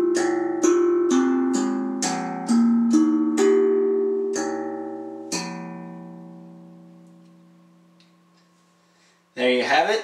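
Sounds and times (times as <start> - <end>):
steel tongue drum notes ringing: 0.0 - 9.1.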